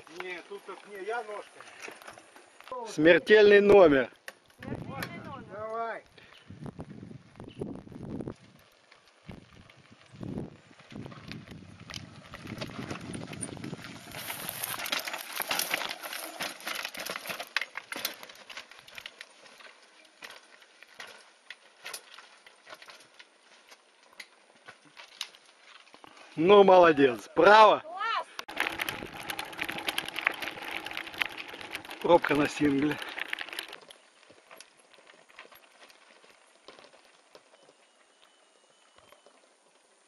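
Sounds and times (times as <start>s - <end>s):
bike rattling over rocks: 0.0s - 6.1s, 7.0s - 37.9s.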